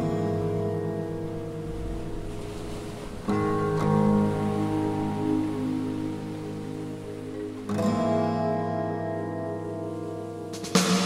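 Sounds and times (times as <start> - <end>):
guitar melody line: 0.0 - 11.0
ringing guitar chords: 0.0 - 11.0.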